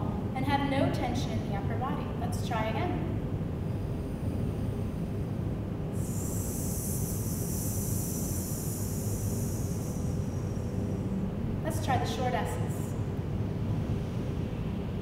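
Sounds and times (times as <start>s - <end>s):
low room hum: 0.0s - 15.0s
woman hissing on the exhale: 6.0s - 11.2s.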